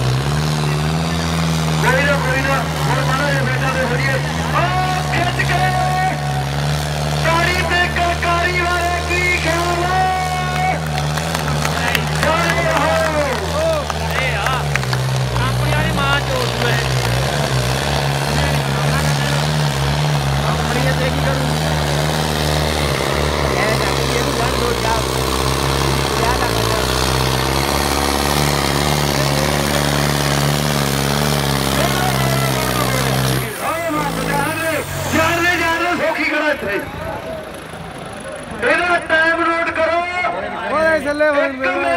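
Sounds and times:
tractor diesel engine under load: 0:00.0 - 0:41.9
man's voice: 0:01.8 - 0:06.4, 0:07.2 - 0:10.9, 0:11.6 - 0:17.5, 0:20.4 - 0:22.1, 0:22.7 - 0:27.2, 0:31.7 - 0:37.3, 0:38.6 - 0:41.9.

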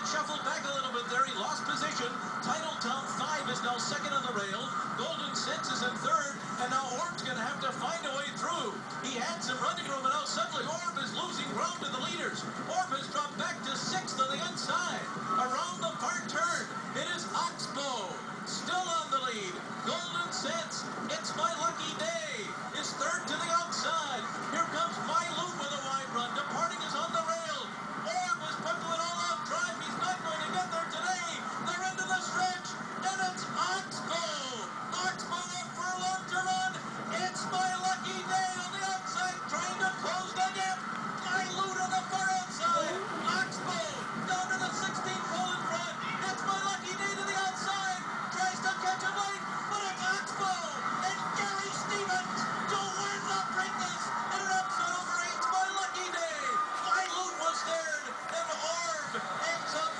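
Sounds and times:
horse race broadcast on television: 0:00.0 - 0:59.9.

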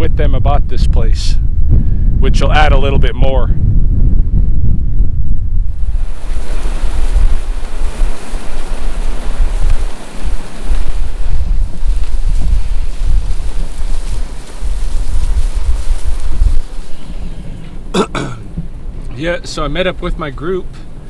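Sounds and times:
wind buffeting microphone: 0:00.0 - 0:21.0
rushing hiss: 0:05.9 - 0:17.6.

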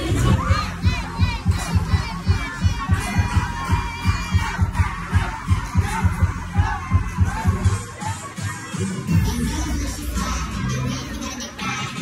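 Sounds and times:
crowd shouting and chattering: 0:00.0 - 0:12.0
party music with heavy bass beat: 0:00.0 - 0:12.0.

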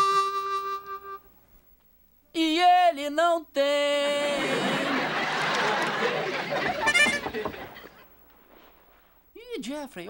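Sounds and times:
harmonica long held note: 0:00.0 - 0:01.3, 0:06.7 - 0:07.4.

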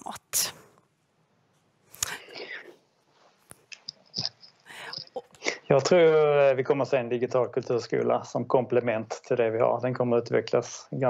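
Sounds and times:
person whispering: 0:00.0 - 0:00.7, 0:02.0 - 0:02.8, 0:04.2 - 0:05.7.

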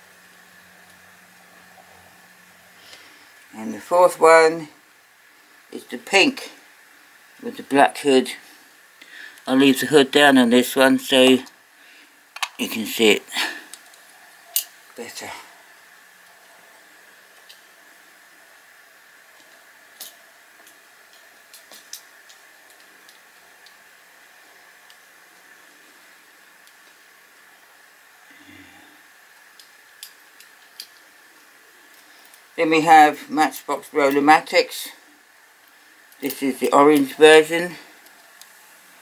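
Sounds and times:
motorized turntable hum: 0:00.0 - 0:03.5.

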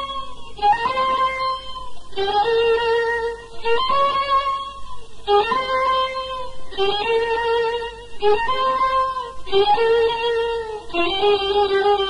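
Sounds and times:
solo violin playing: 0:00.0 - 0:12.0.

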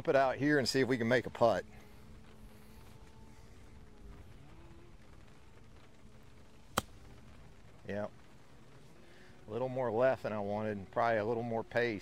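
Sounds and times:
golf club striking ball: 0:06.7 - 0:07.1.

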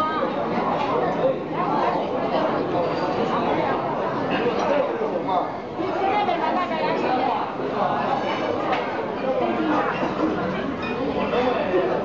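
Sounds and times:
chatter of many diners: 0:00.0 - 0:12.0.

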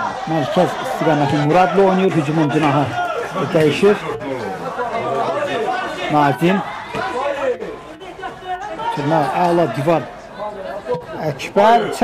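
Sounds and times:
several voices talking: 0:00.0 - 0:12.0.

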